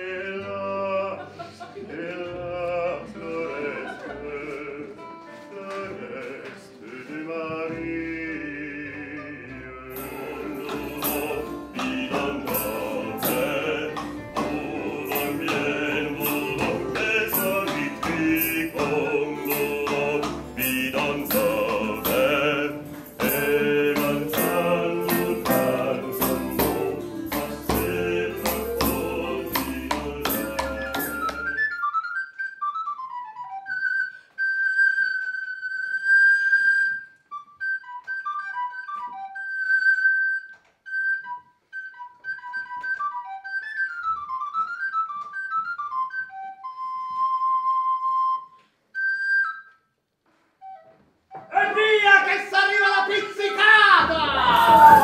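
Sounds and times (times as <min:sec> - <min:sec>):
lute ensemble with hand drum: 0:03.0 - 0:55.0
jingling percussion: 0:09.9 - 0:31.6, 0:54.0 - 0:55.0
solo recorder melody: 0:30.4 - 0:51.5.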